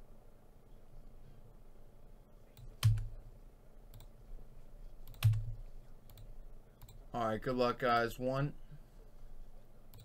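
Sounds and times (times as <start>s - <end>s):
computer mouse clicks: 2.6s - 3.1s, 3.9s - 4.1s, 5.0s - 7.0s.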